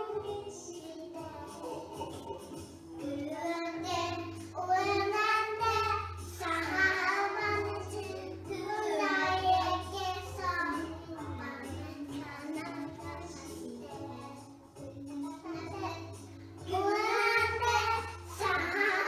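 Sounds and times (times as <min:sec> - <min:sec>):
children's choir singing on television: 0:00.0 - 0:19.0
instrumental accompaniment: 0:00.0 - 0:19.0.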